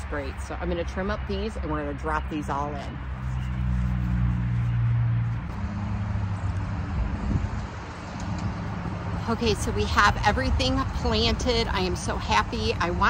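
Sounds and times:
road noise: 0:00.0 - 0:13.0
vehicle engine hum: 0:00.0 - 0:13.0.

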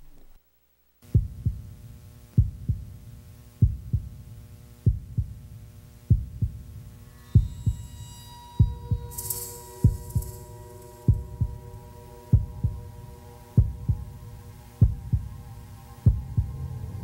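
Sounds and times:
steady low hum: 0:00.0 - 0:17.0
heartbeat thumps: 0:01.0 - 0:06.8, 0:08.6 - 0:09.1, 0:09.8 - 0:10.4, 0:11.1 - 0:11.7, 0:12.3 - 0:12.9, 0:13.6 - 0:14.2, 0:14.8 - 0:15.4, 0:16.0 - 0:16.7
high tones: 0:07.1 - 0:16.6.

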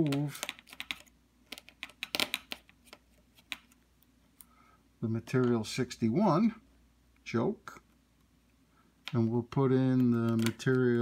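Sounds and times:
small clicks and taps: 0:00.0 - 0:04.5, 0:09.9 - 0:10.9.

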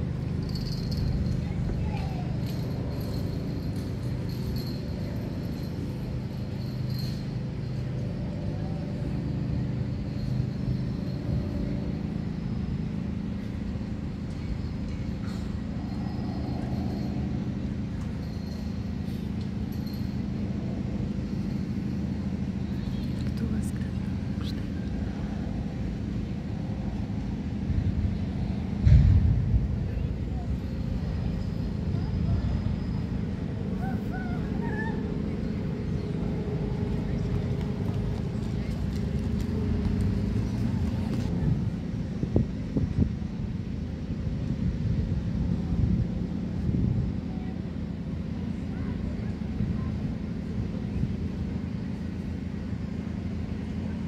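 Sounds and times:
steady low hum: 0:00.0 - 0:54.0
loud low thump: 0:28.8 - 0:29.7.

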